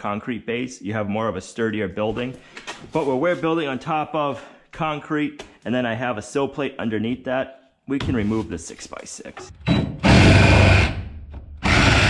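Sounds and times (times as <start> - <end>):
reciprocating saw cutting wood: 10.0 - 12.0.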